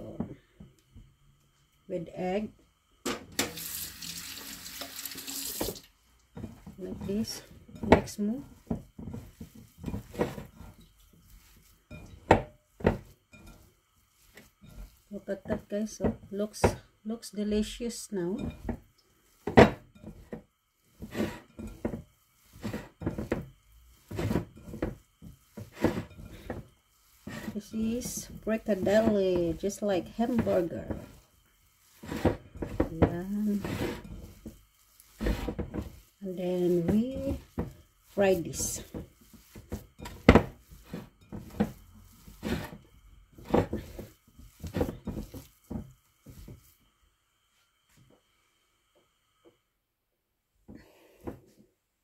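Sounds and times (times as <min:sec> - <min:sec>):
hands squeezing wet meat mixture: 0:03.6 - 0:15.9, 0:26.4 - 0:46.8.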